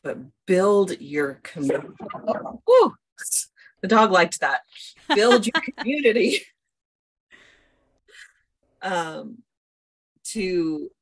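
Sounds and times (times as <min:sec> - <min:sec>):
person speaking: 0:05.0 - 0:05.9
woman breathing: 0:07.3 - 0:08.4.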